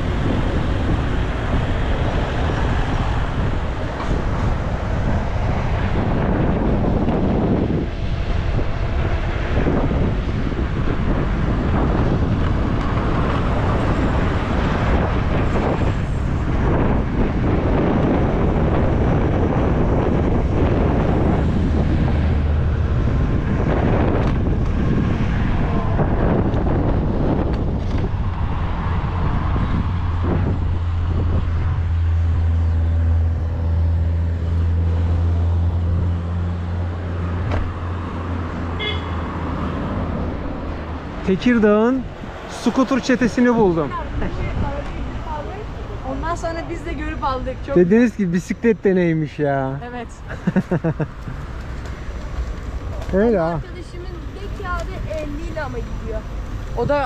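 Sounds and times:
road noise: 0.0s - 57.0s
wind rushing over microphone: 0.0s - 57.0s.

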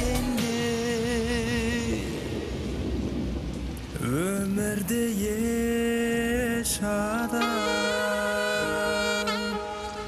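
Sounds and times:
person singing: 0.0s - 2.2s, 4.0s - 10.0s
hissing noisy wash: 0.0s - 10.0s.

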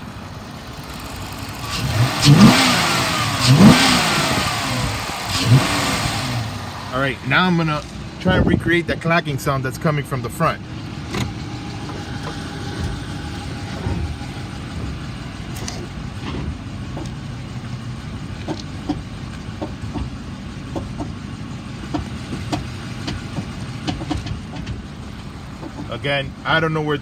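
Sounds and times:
car engine running: 0.0s - 27.0s
irregular clacks from car front: 15.5s - 17.3s, 18.3s - 21.2s, 21.8s - 26.1s.

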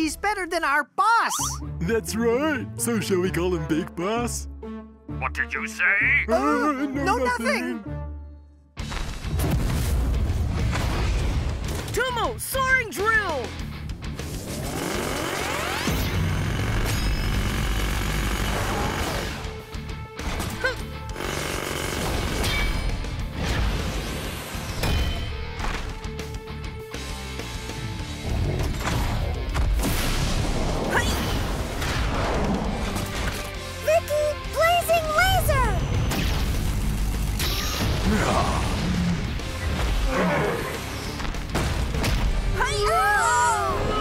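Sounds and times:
battle music: 1.5s - 15.2s
impacts and booms: 8.8s - 11.9s.

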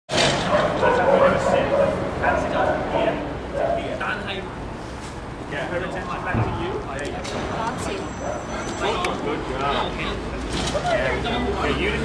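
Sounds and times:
people's voices: 0.2s - 12.0s
dog yipping: 0.5s - 2.8s.

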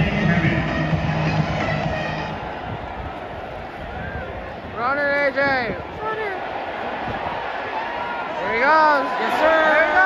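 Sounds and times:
stadium crowd roaring: 0.0s - 10.0s.

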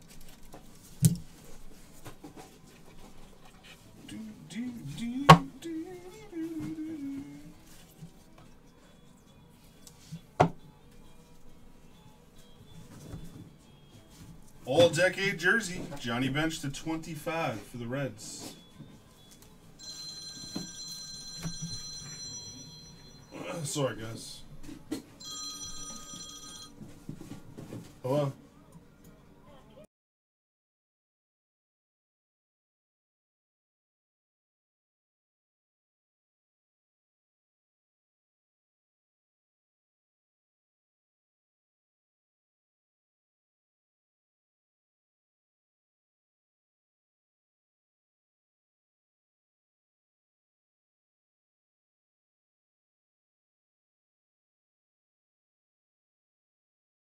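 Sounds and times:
box knock: 5.3s - 5.5s
telephone ringing electronic trill: 19.8s - 23.4s, 25.2s - 26.8s.

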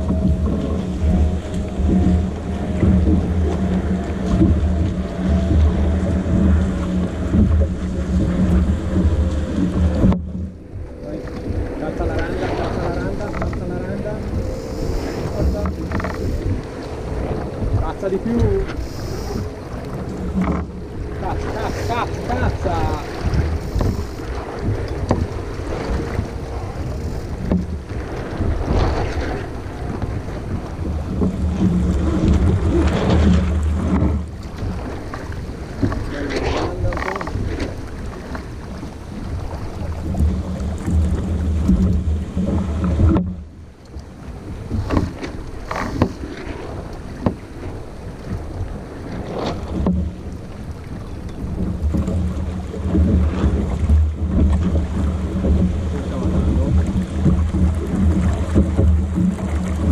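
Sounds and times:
water rushing along hull: 0.0s - 59.9s
wind buffeting microphone: 0.0s - 59.9s.

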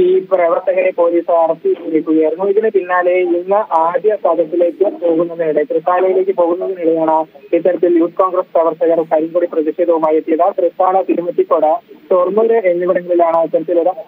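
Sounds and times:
man talking over phone line: 0.0s - 14.0s.

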